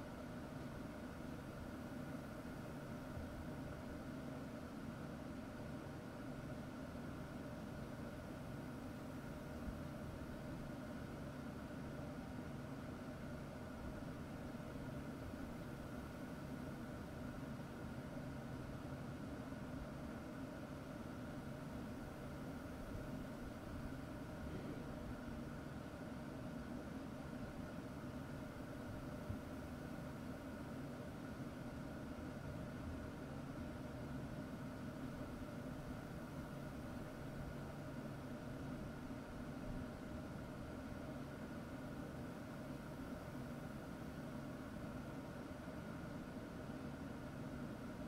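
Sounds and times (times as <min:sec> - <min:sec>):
steady background hum: 0:00.0 - 0:48.0.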